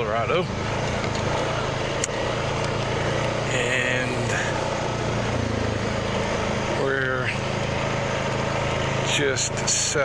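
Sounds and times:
atv engine running: 0:00.0 - 0:10.0.

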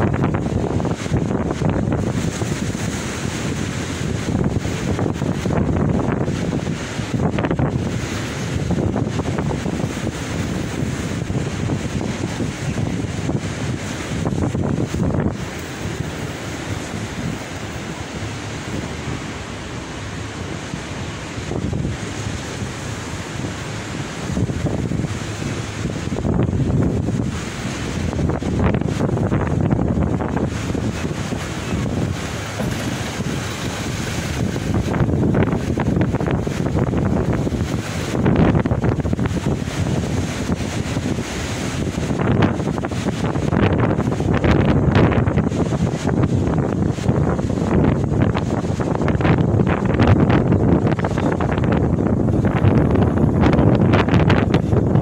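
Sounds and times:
sea waves breaking: 0:00.0 - 0:55.0
wind gusting over microphone: 0:00.0 - 0:55.0.

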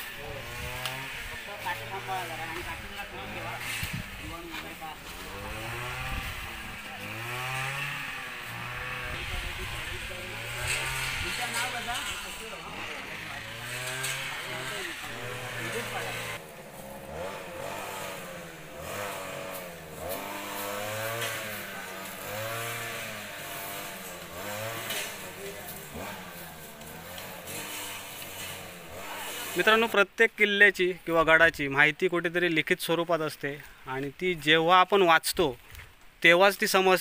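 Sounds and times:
people's voices: 0:00.0 - 0:16.6
small engine revving: 0:00.0 - 0:29.9.

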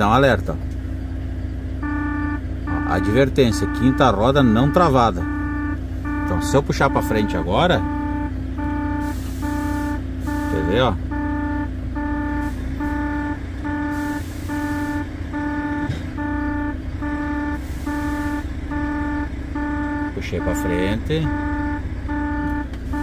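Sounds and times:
truck engine running: 0:00.0 - 0:23.0
dashboard warning chime beeping: 0:01.8 - 0:23.0.

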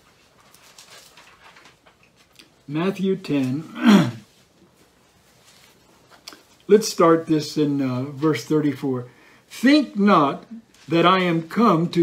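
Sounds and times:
thin pages rustling: 0:00.0 - 0:02.6, 0:04.4 - 0:06.6.

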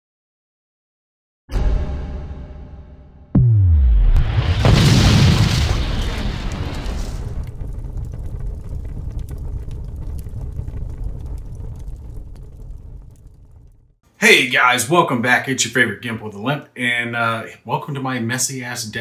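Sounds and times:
explosion blast: 0:03.3 - 0:14.0
low rumble: 0:03.4 - 0:14.0.

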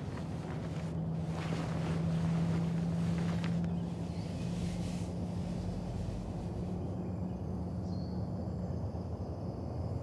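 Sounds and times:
faint rustles: 0:00.0 - 0:06.8
steady low hum: 0:00.0 - 0:10.0.

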